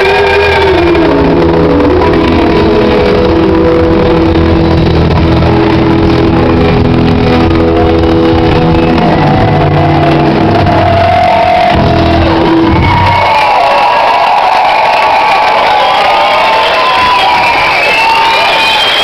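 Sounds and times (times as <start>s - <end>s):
audience cheering and shouting: 0.0s - 19.0s.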